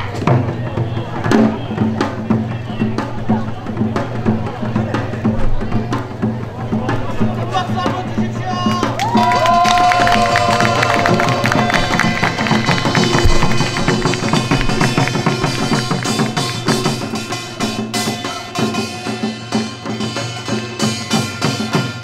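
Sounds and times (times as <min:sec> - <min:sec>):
hourglass drum and barrel drum: 0:00.0 - 0:22.0.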